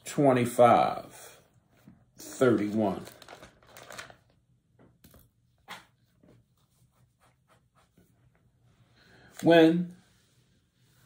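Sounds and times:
paper pages rustling: 2.3 - 4.4.

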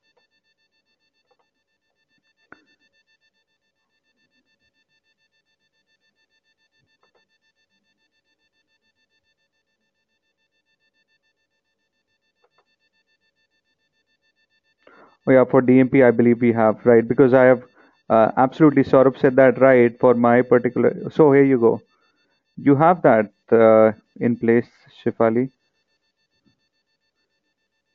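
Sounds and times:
faint steady whine: 0.0 - 27.9.

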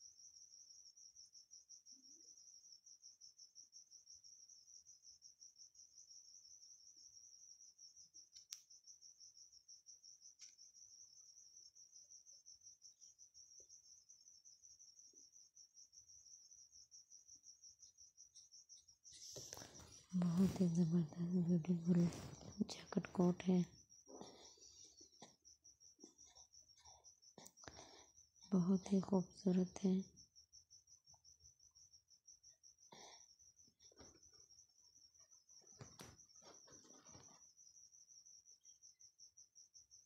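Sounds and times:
cricket trilling: 0.0 - 40.0.

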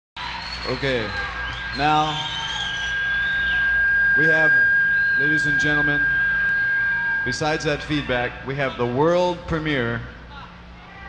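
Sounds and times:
microphone feedback whistle: 0.3 - 8.8
faint wavering tone: 1.1 - 10.7.

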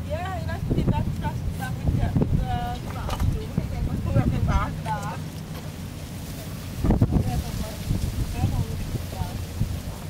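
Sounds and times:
people talking: 0.0 - 5.2, 6.9 - 9.4
wind buffeting microphone: 0.0 - 10.0.

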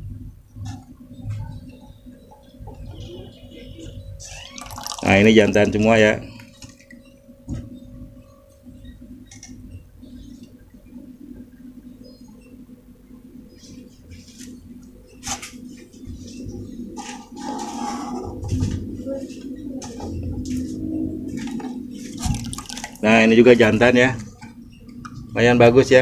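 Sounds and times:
steady low hum: 0.0 - 26.0
light water sounds: 22.2 - 23.0
plastic cups and buckets knocking: 22.2 - 23.1.

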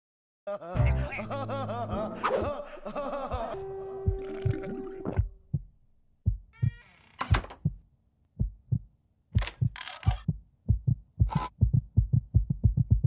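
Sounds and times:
heartbeat thumps: 3.3 - 7.8, 8.4 - 13.0.

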